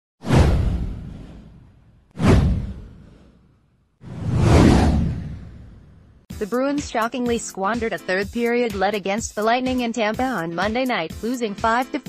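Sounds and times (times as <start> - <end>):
swoosh with low rumble: 0.2 - 6.3.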